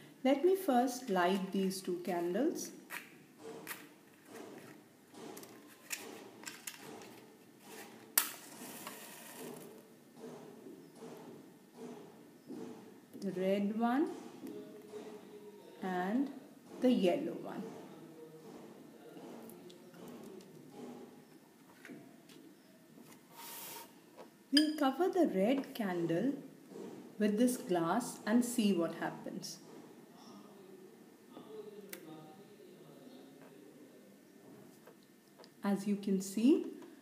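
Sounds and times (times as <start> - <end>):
brief hiss: 23.3 - 24.0.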